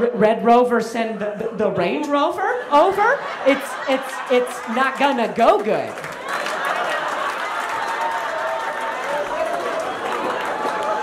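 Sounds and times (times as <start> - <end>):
audience applauding and laughing: 2.5 - 11.0.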